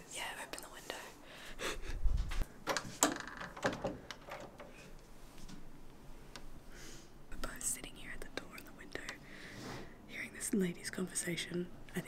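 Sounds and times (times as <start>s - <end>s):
woman whispering: 0.0s - 1.2s, 7.3s - 9.2s, 10.1s - 12.0s.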